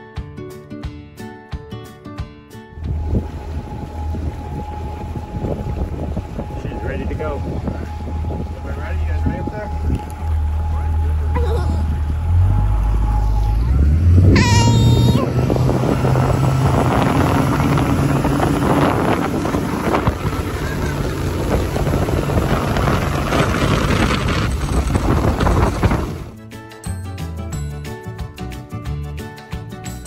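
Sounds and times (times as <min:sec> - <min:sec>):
outboard motor accelerating: 0:02.8 - 0:26.4
wind buffeting microphone: 0:02.8 - 0:26.4
person shouting: 0:14.3 - 0:15.4.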